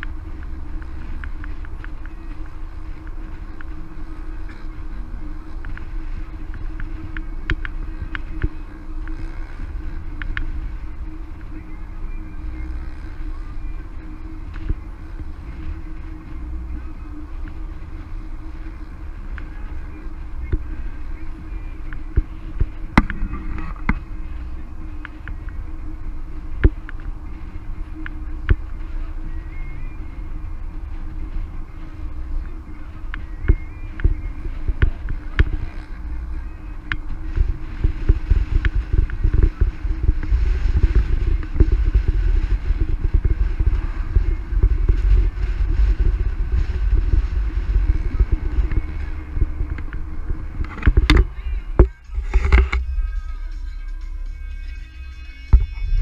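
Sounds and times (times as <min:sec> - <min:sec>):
car engine hum: 0:00.0 - 0:56.0.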